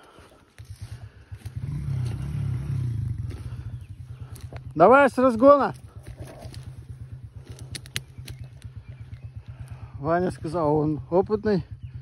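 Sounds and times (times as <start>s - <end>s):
moped engine idling: 0.0s - 12.0s
faint clicks: 7.5s - 9.8s.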